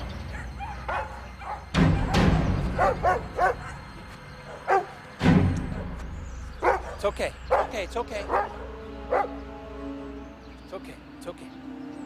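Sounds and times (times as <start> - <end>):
film score: 0.0 - 12.0
dogs barking: 0.1 - 5.0, 5.7 - 9.5.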